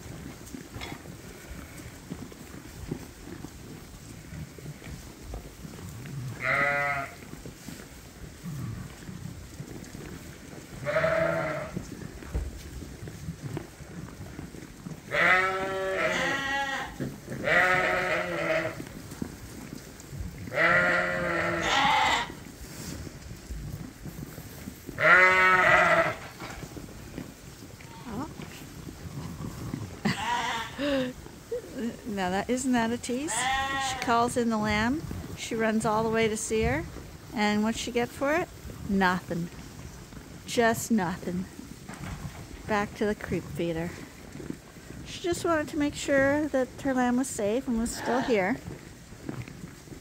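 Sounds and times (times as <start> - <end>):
sheep bleating: 6.3 - 7.2, 10.8 - 11.8, 15.1 - 18.8, 20.5 - 22.4, 25.0 - 26.2, 30.0 - 31.1, 33.3 - 34.1, 48.0 - 48.6.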